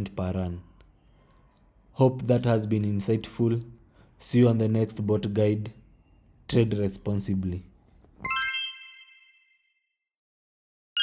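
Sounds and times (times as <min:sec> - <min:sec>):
bright bell-like chime: 0:08.3 - 0:10.0.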